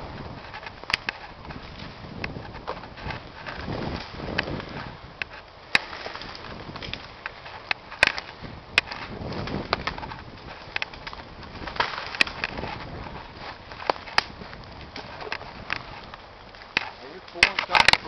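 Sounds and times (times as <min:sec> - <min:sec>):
branches cracking and snapping: 0:00.0 - 0:18.0.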